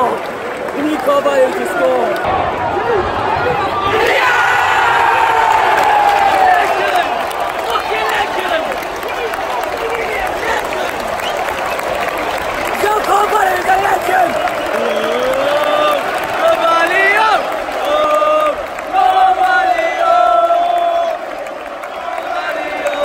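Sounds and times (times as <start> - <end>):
crowd clapping: 0.0 - 23.0
crowd shouting: 0.0 - 23.0.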